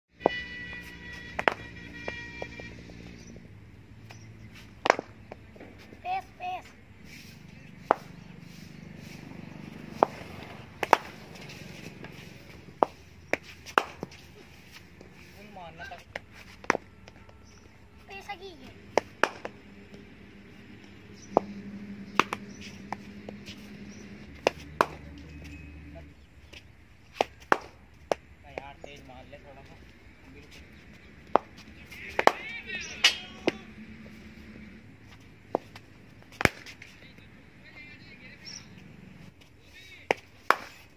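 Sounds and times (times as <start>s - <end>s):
sustained music tones: 0.1s - 4.5s, 16.8s - 26.4s
ball bouncing on concrete: 1.1s - 5.9s, 7.8s - 8.2s, 9.7s - 15.1s, 16.0s - 17.6s, 18.6s - 20.1s, 20.8s - 25.6s, 26.5s - 29.0s, 31.2s - 33.6s, 35.1s - 36.9s
steady low hum: 16.0s - 32.0s.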